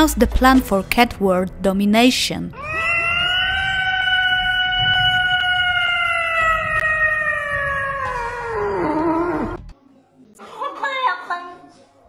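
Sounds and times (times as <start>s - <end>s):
cat meowing: 2.5s - 9.6s.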